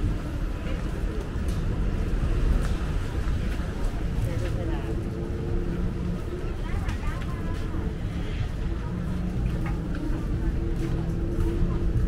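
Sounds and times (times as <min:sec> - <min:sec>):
low traffic rumble: 0:00.0 - 0:12.0.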